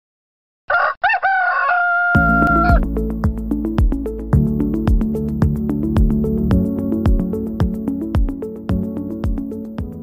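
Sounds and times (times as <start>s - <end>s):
music with steady beat: 2.2s - 10.0s.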